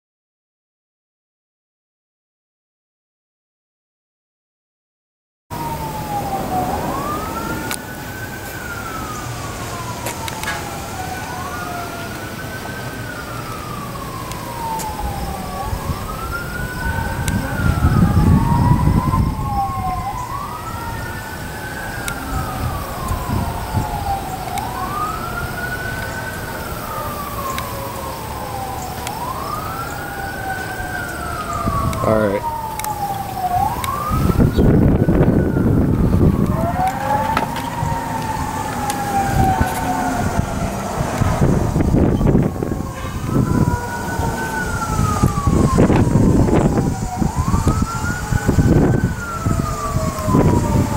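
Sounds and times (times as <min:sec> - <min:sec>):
second siren gliding down: 0:05.5 - 0:50.9
wailing siren: 0:05.5 - 0:50.9.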